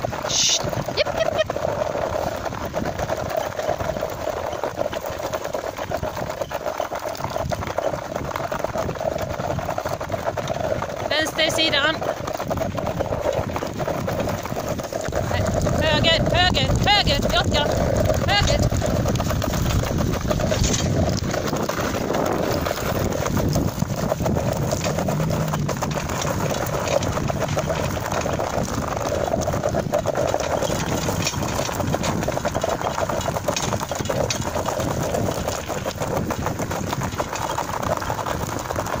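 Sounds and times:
wheels crunching on gravel: 0.0s - 39.0s.

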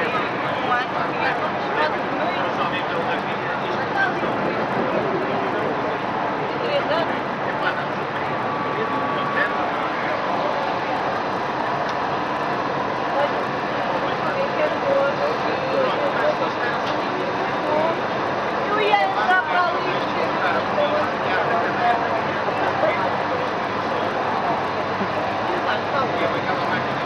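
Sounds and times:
train wind and track noise: 0.0s - 27.0s
voices: 0.0s - 27.0s.

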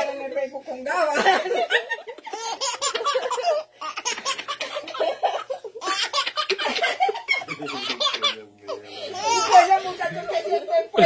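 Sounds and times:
women laughing: 1.1s - 11.0s
baby laughing: 2.2s - 10.4s.

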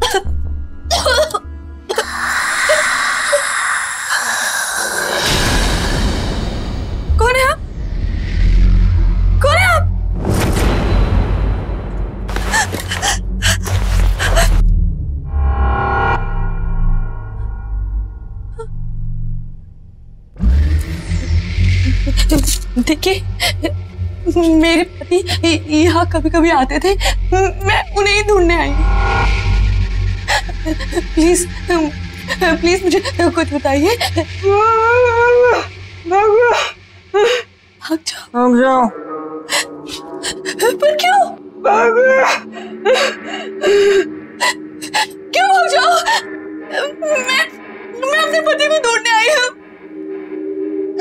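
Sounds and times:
woman gasping and whimpering: 12.3s - 14.6s, 23.4s - 23.7s, 39.5s - 41.1s, 42.2s - 45.2s
low sustained drone: 13.2s - 41.7s.

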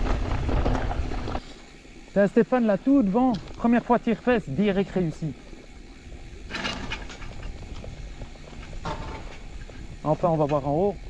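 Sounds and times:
bike rattling and ticking: 0.0s - 2.0s, 6.4s - 11.0s
bike tyres crunching over gravel: 0.0s - 11.0s.

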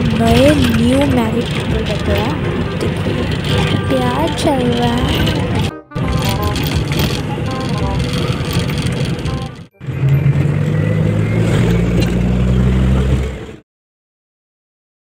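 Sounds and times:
voices: 0.0s - 9.5s
bus engine drone: 0.0s - 13.6s
road noise: 0.0s - 13.6s.

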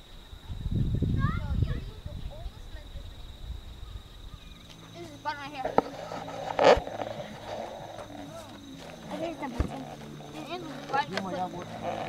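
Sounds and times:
children calling and squealing: 0.4s - 12.0s
child shouting: 1.1s - 2.0s.

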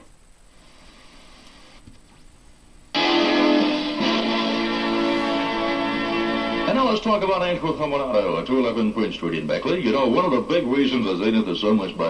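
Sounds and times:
recording hiss: 0.0s - 12.0s
loud music: 3.0s - 7.2s.

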